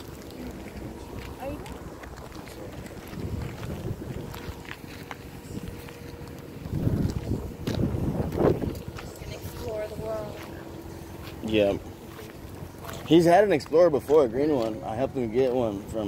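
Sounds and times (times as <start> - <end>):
faint voices talking: 0.0 - 7.6, 8.3 - 16.0
wind buffeting microphone: 0.0 - 10.8.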